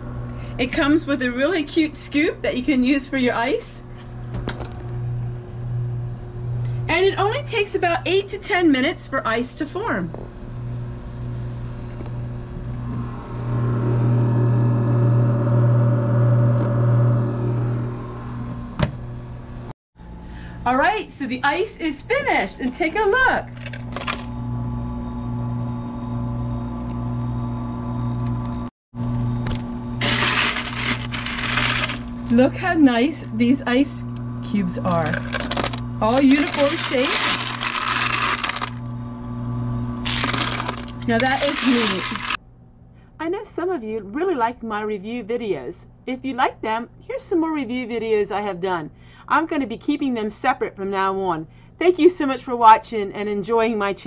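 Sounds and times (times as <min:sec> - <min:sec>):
ice maker humming: 0:04.0 - 0:19.4, 0:22.3 - 0:42.4
ice cubes clinking in scoop: 0:30.0 - 0:32.2, 0:35.0 - 0:38.8, 0:40.0 - 0:42.4.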